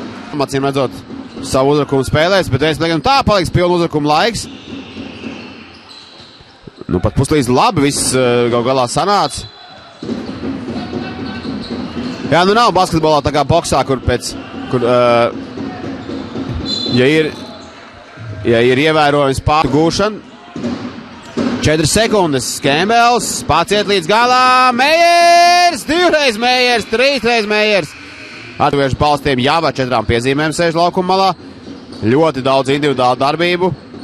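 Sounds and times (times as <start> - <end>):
low arena background: 0.0 - 34.0.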